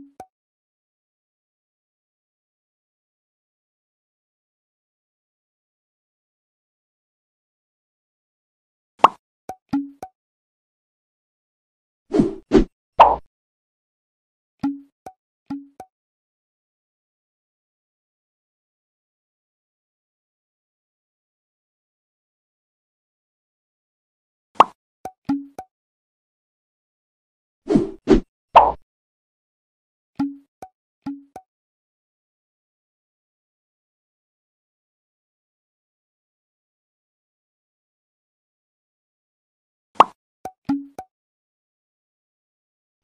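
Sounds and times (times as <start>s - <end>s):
cartoon pops: 9.0s - 9.2s, 13.0s - 13.3s, 24.6s - 24.8s, 28.6s - 28.8s, 40.0s - 40.2s
cartoon clicks and plops: 9.0s - 10.1s, 12.6s - 13.3s, 14.6s - 15.9s, 24.6s - 25.7s, 28.1s - 28.8s, 30.2s - 31.4s, 40.0s - 41.1s.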